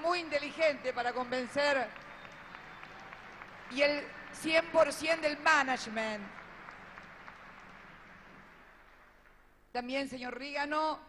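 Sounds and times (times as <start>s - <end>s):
faint audience applause: 0.0s - 9.5s.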